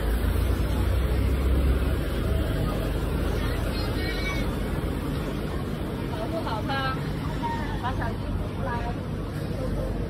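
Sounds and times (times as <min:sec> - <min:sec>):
low rumble of traffic: 0:00.0 - 0:10.0
people talking: 0:00.0 - 0:10.0.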